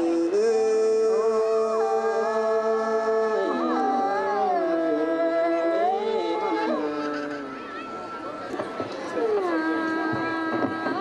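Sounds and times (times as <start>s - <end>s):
woman singing into microphone: 9.2s - 11.0s.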